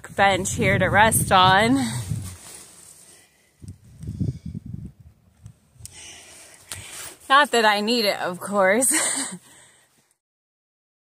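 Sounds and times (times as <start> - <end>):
scuffs and rustles on rock: 1.3 - 3.5, 6.1 - 8.0.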